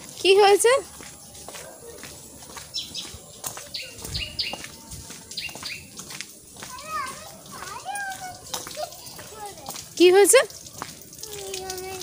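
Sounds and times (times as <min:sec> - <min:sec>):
bird chirping: 0:02.7 - 0:04.7.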